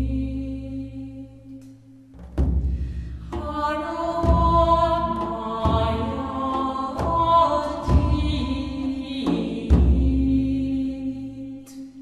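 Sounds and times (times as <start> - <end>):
slow deep drum beats: 2.2 - 10.5.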